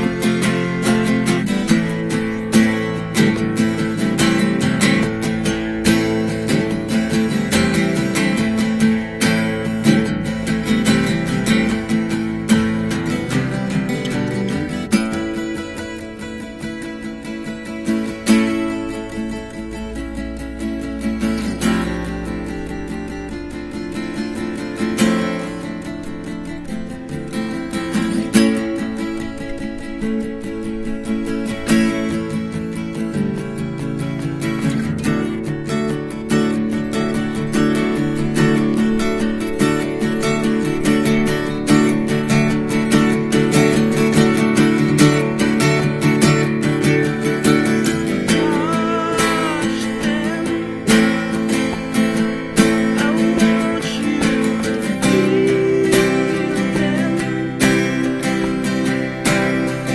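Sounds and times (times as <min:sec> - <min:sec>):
two acoustic guitars strummed: 0:00.0 - 0:59.9.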